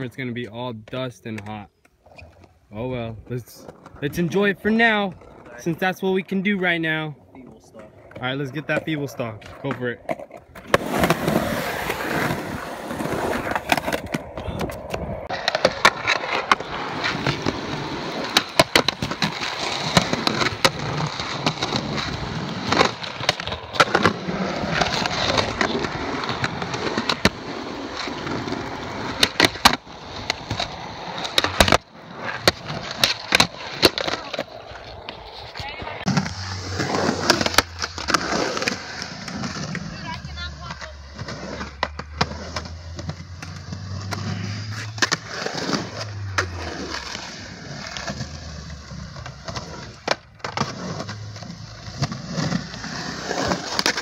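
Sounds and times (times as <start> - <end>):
skateboard wheels rolling on concrete: 0.0 - 54.0
skateboard clacking on ground: 7.4 - 51.3.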